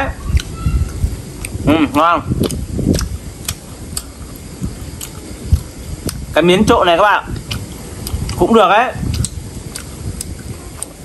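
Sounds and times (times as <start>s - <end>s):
chewing: 0.3s - 1.6s, 2.4s - 6.3s, 7.3s - 11.0s
chopsticks clicking: 2.4s - 4.4s, 9.0s - 11.0s.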